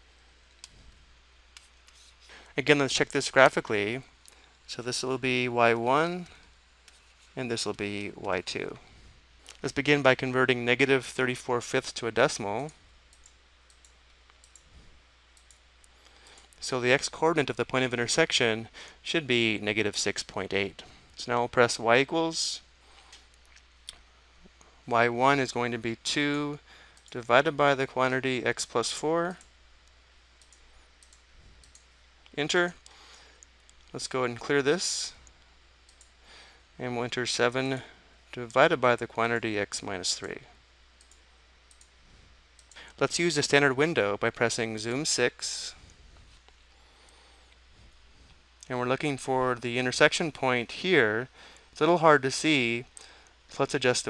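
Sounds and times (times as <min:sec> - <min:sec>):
computer mouse clicks: 0:13.1 - 0:14.7, 0:29.4 - 0:31.9, 0:41.0 - 0:41.9.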